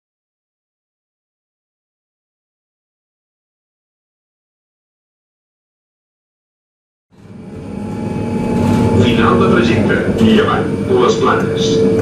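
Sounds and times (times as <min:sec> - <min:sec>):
tram rumbling on board: 0:07.1 - 0:12.0
held hum tones: 0:07.2 - 0:12.0.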